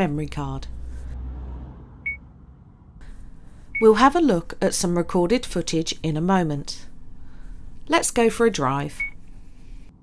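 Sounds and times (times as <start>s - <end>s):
high electronic beeps: 2.0s - 2.2s.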